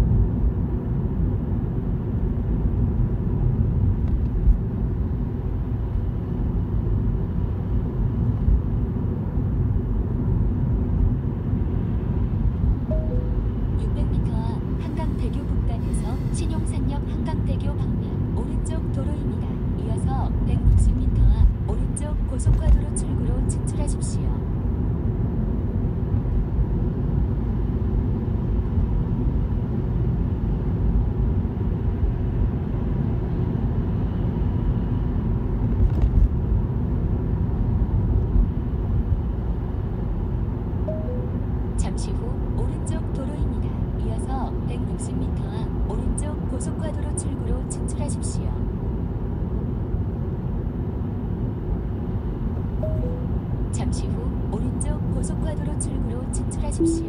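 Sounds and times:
road and tyre noise in car: 0:00.0 - 0:57.0.

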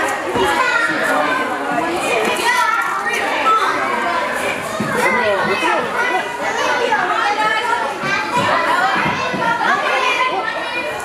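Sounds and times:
children's high voices: 0:00.0 - 0:11.0
crowd chattering: 0:00.0 - 0:11.0.

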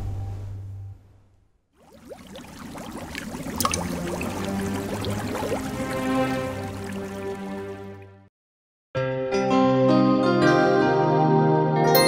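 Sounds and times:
water drips and bubbles: 0:01.8 - 0:08.2.

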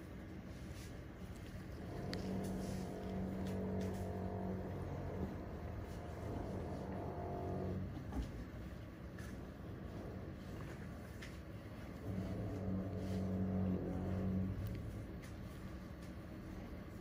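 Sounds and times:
low motor-like drone: 0:01.6 - 0:17.0.

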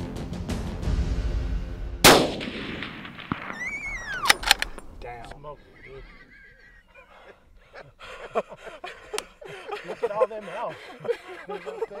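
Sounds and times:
rifle shot echoing: 0:02.0 - 0:05.0
high whinny-like call: 0:03.5 - 0:04.4
sharp clicks: 0:04.1 - 0:05.4.

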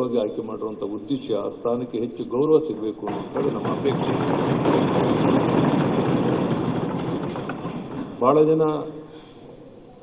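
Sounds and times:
crowd applauding: 0:03.3 - 0:08.3.

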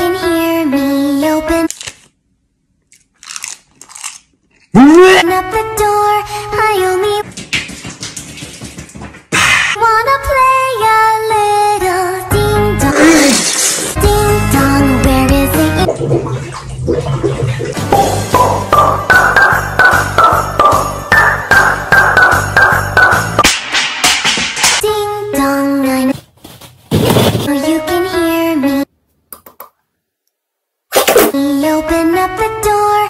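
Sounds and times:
person biting crunchy food: 0:02.9 - 0:04.7
water splashing in bathtub: 0:15.8 - 0:19.3
sung soundtrack music: 0:17.8 - 0:23.4.

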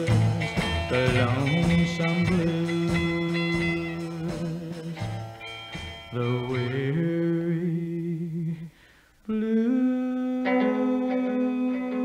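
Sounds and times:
blues guitar notes: 0:00.0 - 0:08.7, 0:10.3 - 0:12.0.

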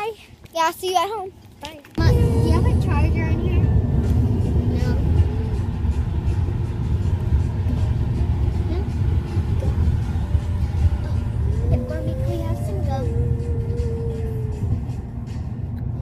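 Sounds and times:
low vehicle rumble: 0:01.9 - 0:16.0
music: 0:02.1 - 0:16.0.

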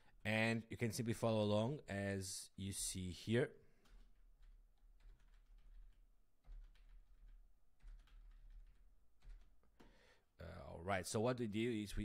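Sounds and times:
typing on keyboard: 0:03.7 - 0:10.0.

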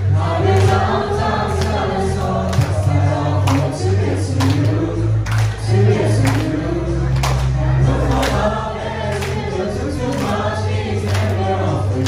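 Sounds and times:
backing track with beat: 0:00.0 - 0:12.0
mixed choir singing: 0:00.0 - 0:12.0.

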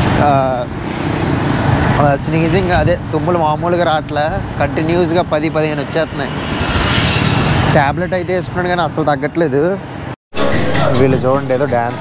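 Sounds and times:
motorcycle engine and road noise: 0:00.0 - 0:10.2
passing traffic: 0:00.0 - 0:12.0.

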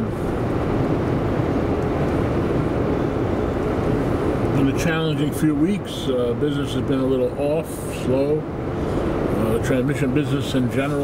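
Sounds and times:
road noise inside car: 0:00.0 - 0:11.0.

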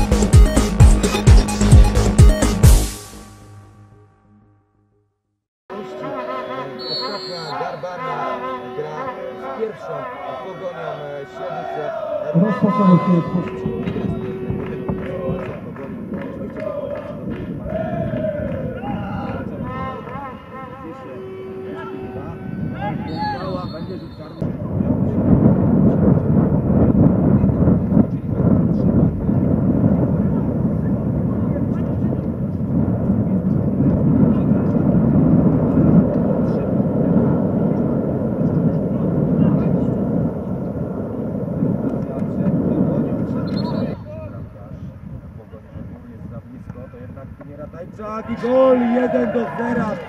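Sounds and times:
short high whistle blast: 0:06.3 - 0:08.0, 0:23.0 - 0:24.4, 0:43.4 - 0:44.1
people shouting: 0:10.0 - 0:13.8, 0:17.6 - 0:20.5, 0:48.2 - 0:50.0
wind buffeting microphone: 0:12.4 - 0:50.0.

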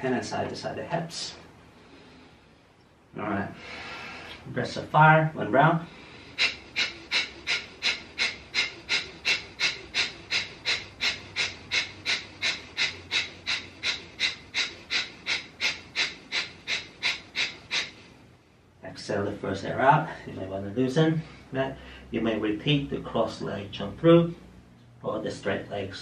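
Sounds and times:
rapid forceful exhalations: 0:05.8 - 0:18.4.

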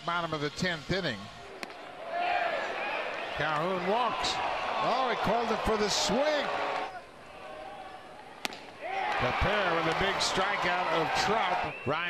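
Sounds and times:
baseball popping into mitt: 0:08.4 - 0:09.2.

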